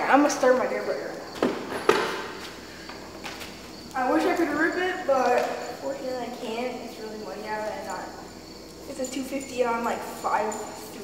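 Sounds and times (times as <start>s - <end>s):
insect chirring: 0.0s - 11.0s
footsteps on concrete floor: 1.3s - 4.6s.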